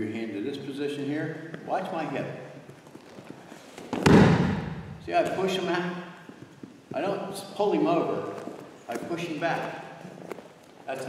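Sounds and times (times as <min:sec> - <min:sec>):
body slapping onto padded mat: 0:03.9 - 0:05.4.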